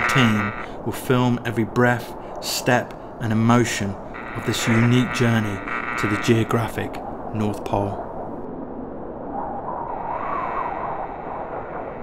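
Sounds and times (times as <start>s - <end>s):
rushing wind: 0.0s - 12.0s.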